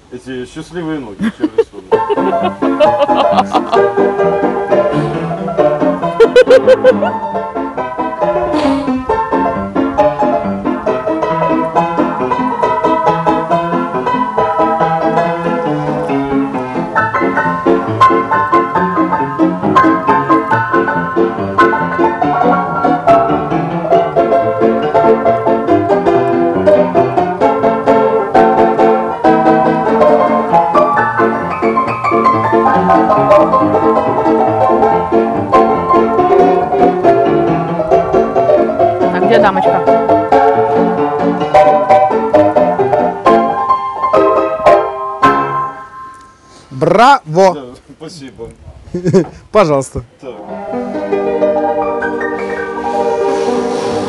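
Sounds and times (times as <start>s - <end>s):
upright piano playing: 0.0s - 47.1s, 49.6s - 54.0s.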